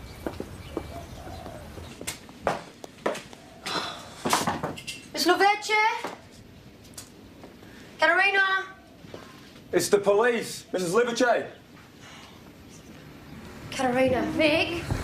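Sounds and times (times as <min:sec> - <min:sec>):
footsteps: 0:00.2 - 0:04.8.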